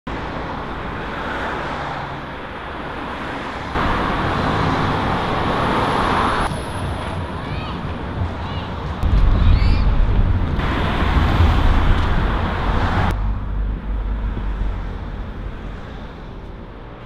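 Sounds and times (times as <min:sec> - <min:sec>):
traffic rush: 0:00.1 - 0:17.0.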